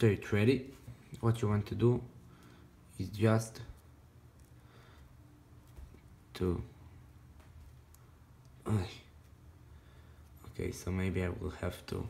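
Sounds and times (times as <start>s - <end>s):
faint rustles of cord handled: 0.5s - 12.0s.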